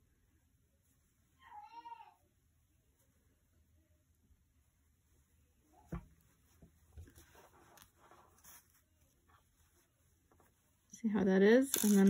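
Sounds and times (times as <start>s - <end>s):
soft rustling of yarn: 0.0s - 12.0s.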